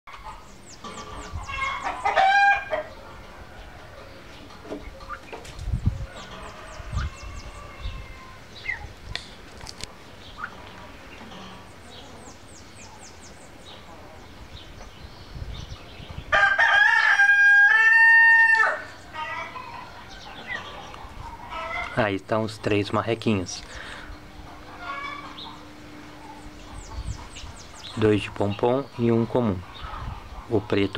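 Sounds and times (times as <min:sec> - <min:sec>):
small birds chirping: 0:00.1 - 0:16.3, 0:18.8 - 0:30.9
quiet farmyard background: 0:00.1 - 0:30.9
rooster crowing: 0:01.5 - 0:04.2, 0:06.0 - 0:08.5, 0:16.3 - 0:21.9.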